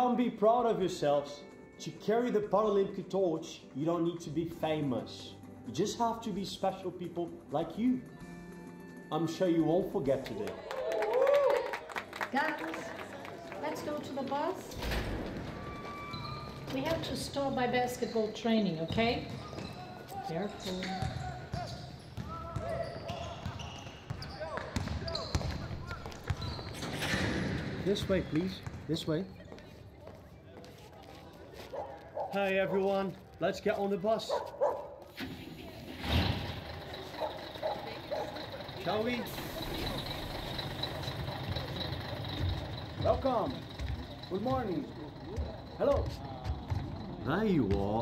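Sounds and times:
basketballs bouncing on hard floor: 18.7 - 19.9, 20.6 - 29.8, 42.4 - 48.0
bus engine idling: 35.1 - 47.6.

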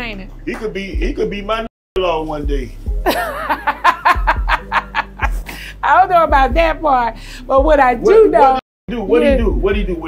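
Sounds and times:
soft background music: 0.0 - 10.0
woman laughing: 3.1 - 5.5.

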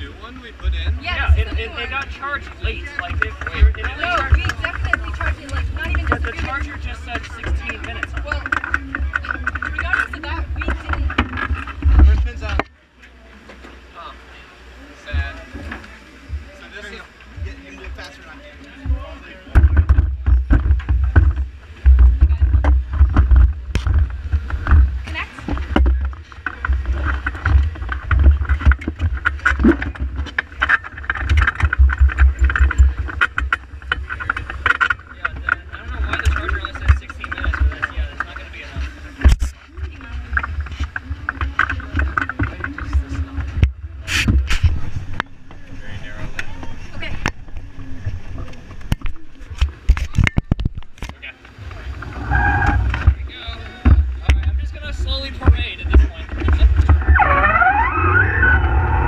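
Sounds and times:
background voices and chatter: 0.0 - 59.0.

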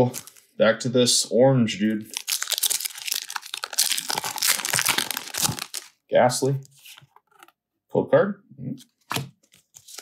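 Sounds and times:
foil wrapper crinkling: 2.0 - 6.0.

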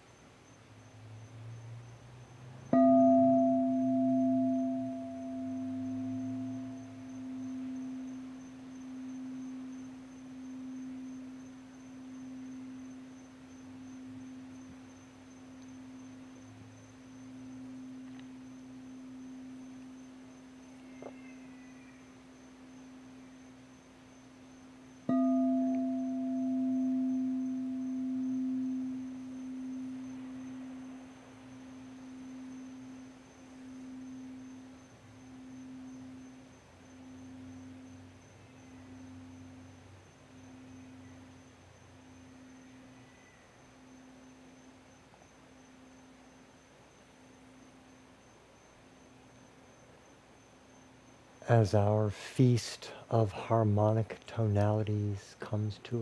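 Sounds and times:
singing bowl struck: 2.7 - 13.1, 25.0 - 31.0
crystal singing bowl ringing: 2.7 - 23.6, 25.0 - 41.4.

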